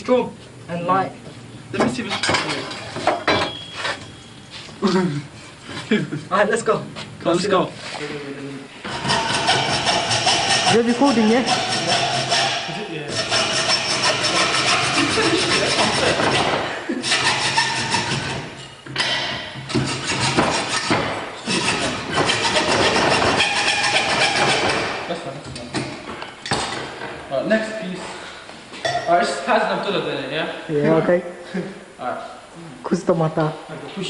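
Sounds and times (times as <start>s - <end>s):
hacksaw cutting metal: 8.8s - 25.0s.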